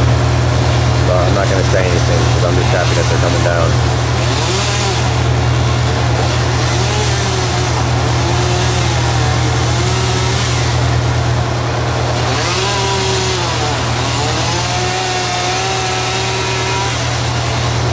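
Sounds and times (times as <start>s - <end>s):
truck engine droning: 0.0s - 17.9s.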